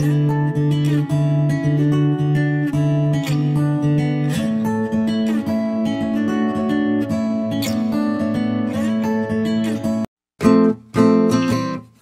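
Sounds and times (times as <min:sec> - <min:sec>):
acoustic guitar chords: 0:00.0 - 0:12.0.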